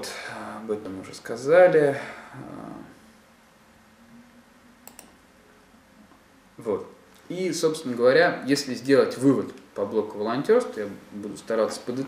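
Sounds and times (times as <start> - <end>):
faint computer clicks: 4.8 - 5.2.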